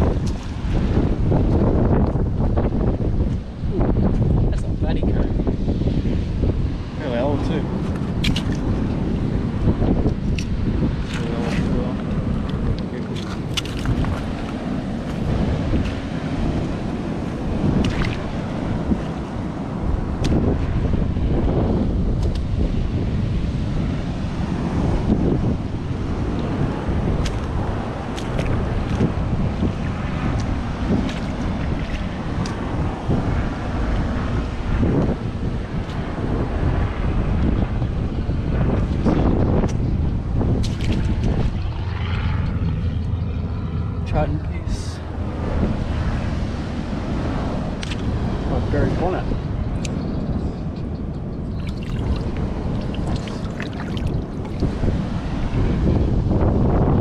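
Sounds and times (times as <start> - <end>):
surf washing: 0.0 - 50.0, 50.6 - 57.0
wind buffeting microphone: 0.0 - 57.0.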